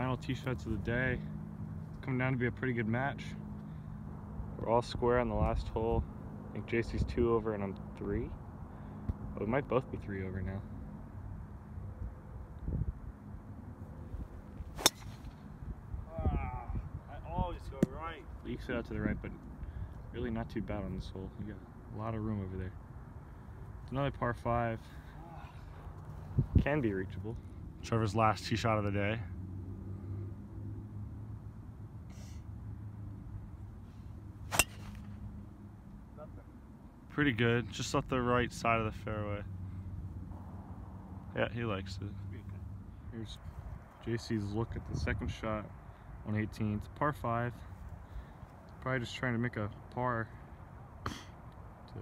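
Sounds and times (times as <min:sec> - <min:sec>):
golf ball crack off driver: 0:14.8 - 0:15.4, 0:34.5 - 0:35.2.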